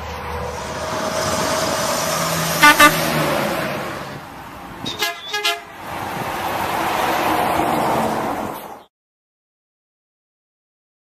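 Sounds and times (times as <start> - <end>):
truck horn toots: 2.5 - 3.3, 4.8 - 5.8.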